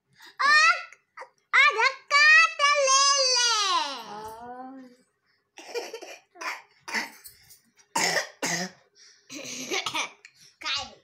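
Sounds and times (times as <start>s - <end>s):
person coughing: 8.0s - 10.1s.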